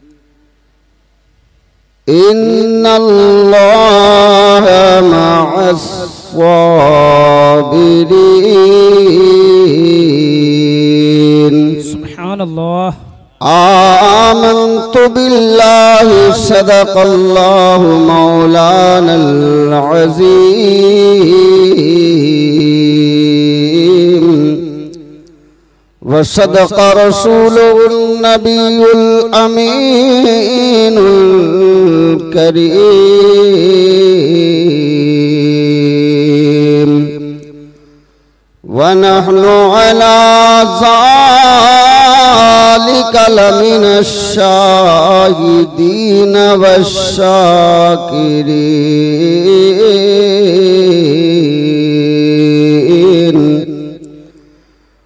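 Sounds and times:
man chanting: 2.0s - 25.3s, 26.0s - 37.9s, 38.6s - 54.5s.

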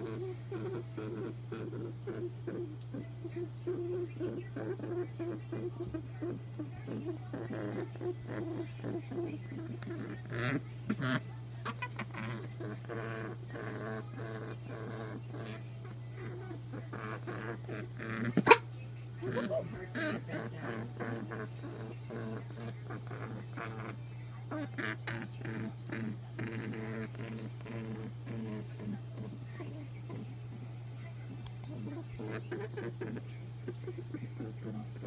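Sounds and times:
rabbit honking: 0.0s - 30.3s, 31.7s - 35.0s
steady low hum: 0.0s - 35.0s
person laughing: 19.2s - 19.8s.

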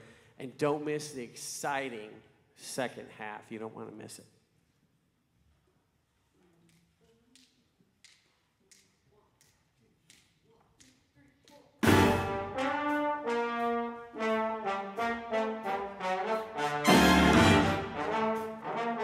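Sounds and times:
big band brass section: 11.8s - 19.0s.

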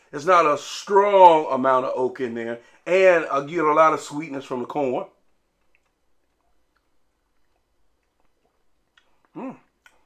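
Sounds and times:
wet mouth clicks from sipping: 5.6s - 10.0s.

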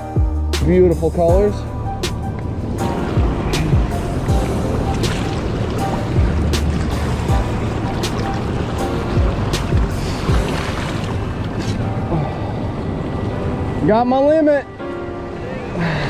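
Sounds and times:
faint background music: 0.0s - 16.0s
wind buffeting microphone: 0.2s - 16.0s
river water rushing: 1.8s - 16.0s.

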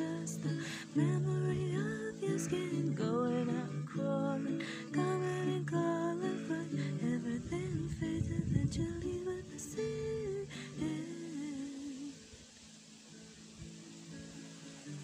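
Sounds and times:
acoustic guitar strummed chords: 0.0s - 15.0s.

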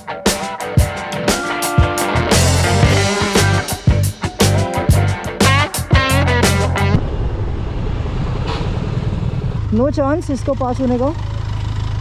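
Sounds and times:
motorcycle engine idling: 9.7s - 12.0s.

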